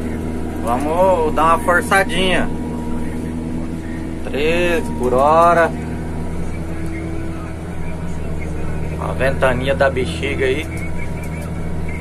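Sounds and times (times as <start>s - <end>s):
engine low drone: 0.0s - 12.0s
thin steady hum: 0.0s - 12.0s.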